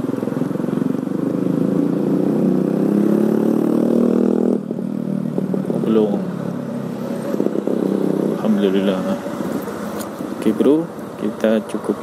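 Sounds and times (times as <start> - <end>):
motorcycle engine accelerating: 0.0 - 10.5.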